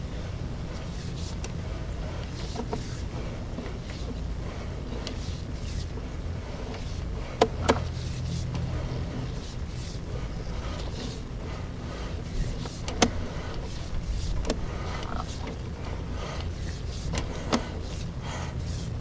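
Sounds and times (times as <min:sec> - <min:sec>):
cable reel humming: 0:00.0 - 0:19.0.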